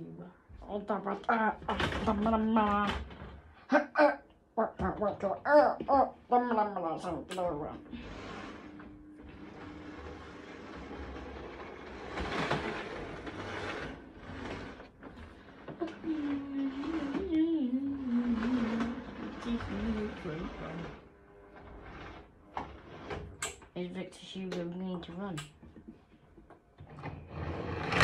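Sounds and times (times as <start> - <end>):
wavering hum: 3.8 - 22.3.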